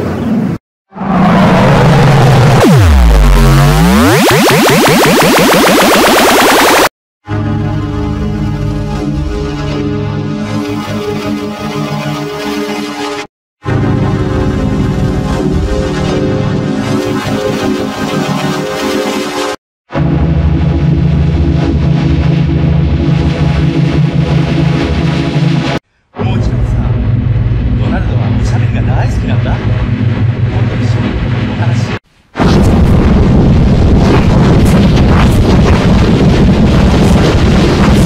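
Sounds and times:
harsh noisy wash: 0:00.9 - 0:06.9, 0:20.2 - 0:38.0
distorted low drone: 0:01.0 - 0:11.1, 0:13.6 - 0:19.0, 0:19.9 - 0:38.0.

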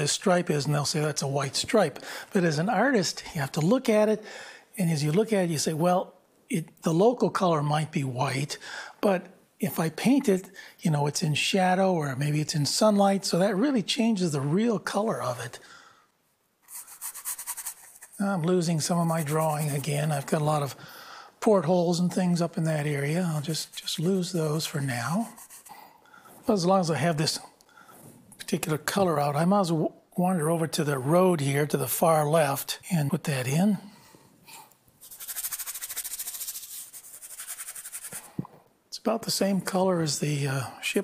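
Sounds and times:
brush scrubbing on canvas: 0:16.6 - 0:20.3, 0:23.2 - 0:26.5, 0:35.0 - 0:38.3.

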